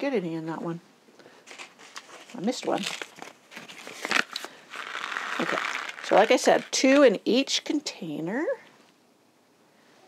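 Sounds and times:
seed packet rustling: 0:01.4 - 0:07.2
seeds clicking: 0:04.0 - 0:07.1.

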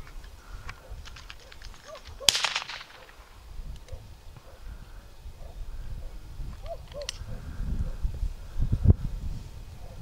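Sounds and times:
distant gunshot: 0:02.2 - 0:03.3.

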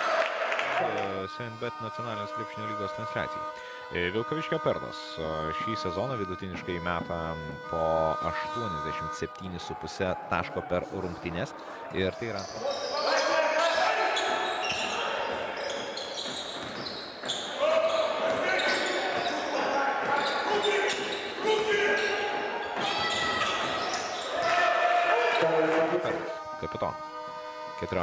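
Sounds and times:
music: 0:00.8 - 0:09.4
players calling out: 0:00.8 - 0:28.0
sneakers squeaking on court: 0:12.3 - 0:24.6.

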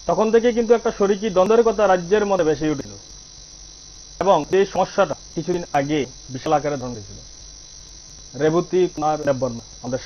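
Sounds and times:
steady high hiss: 0:00.0 - 0:10.0
man speaking: 0:00.1 - 0:03.0, 0:04.2 - 0:07.2, 0:08.4 - 0:10.0.

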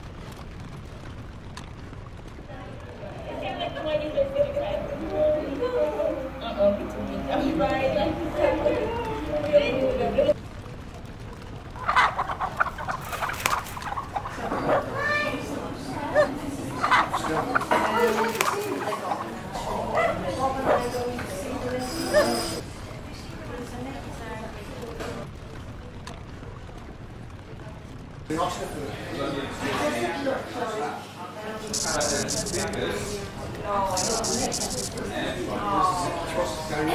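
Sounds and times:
people chattering: 0:02.4 - 0:36.9
chickens clucking: 0:11.8 - 0:15.3, 0:16.0 - 0:21.1.

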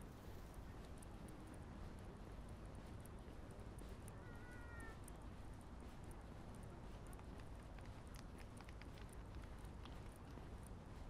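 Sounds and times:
soft footsteps on paving: 0:00.0 - 0:11.0.

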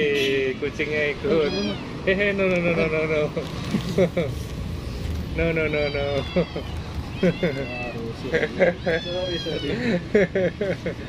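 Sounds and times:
cat meowing: 0:01.2 - 0:02.0, 0:05.4 - 0:09.8.

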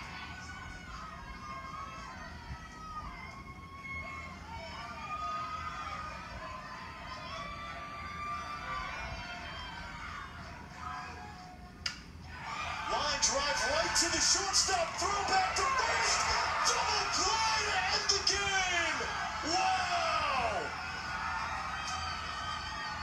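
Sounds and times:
ballpark crowd noise: 0:00.0 - 0:23.0.

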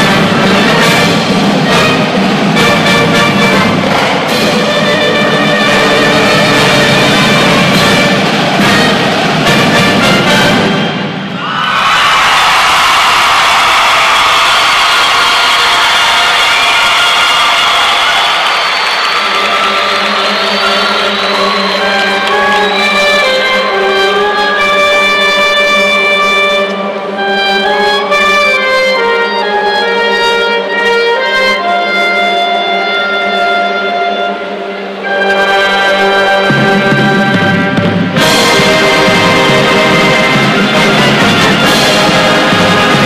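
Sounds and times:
marching band sustained chord: 0:00.0 - 0:11.5, 0:13.2 - 0:43.0
crowd cheering and shouting: 0:05.6 - 0:24.8.

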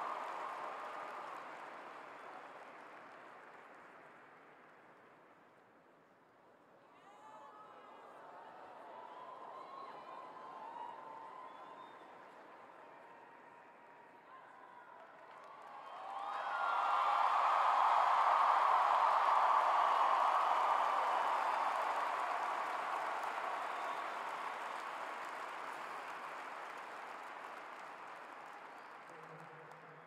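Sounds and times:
crowd cheering and applauding: 0:00.0 - 0:04.2, 0:08.2 - 0:13.6, 0:15.0 - 0:30.0.

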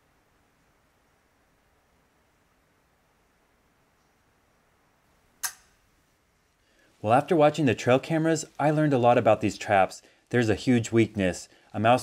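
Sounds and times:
sharp ringing click: 0:05.4 - 0:05.7.

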